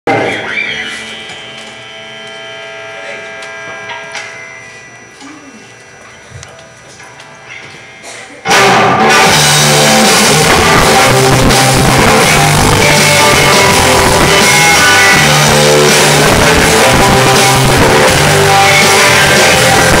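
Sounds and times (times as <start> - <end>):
loud rock band: 8.4 - 20.0
guitar chord ringing: 8.5 - 20.0.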